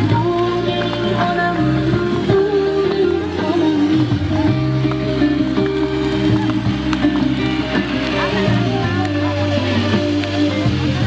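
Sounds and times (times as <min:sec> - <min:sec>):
music with long held notes: 0:00.0 - 0:11.0.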